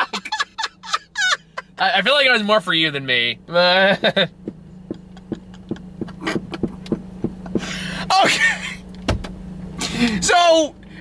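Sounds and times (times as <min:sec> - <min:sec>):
man laughing: 0:00.0 - 0:01.9, 0:03.5 - 0:08.9
low hum inside car: 0:00.0 - 0:11.0.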